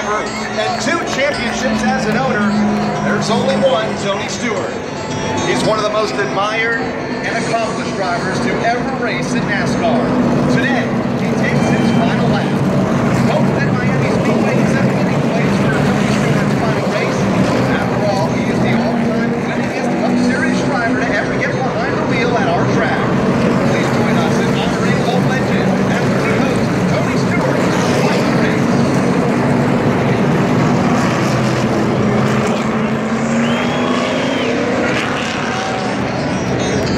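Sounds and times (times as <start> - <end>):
crowd voices: 0.0 - 36.9
race car engines running: 0.0 - 36.9.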